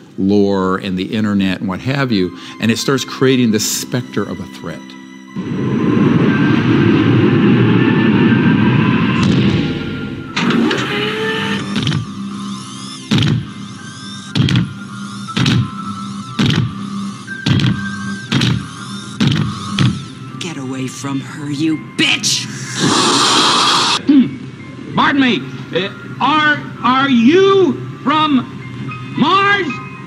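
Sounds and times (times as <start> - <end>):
loud low rumble: 5.4 - 10.4
music with sharp hits: 9.1 - 20.3.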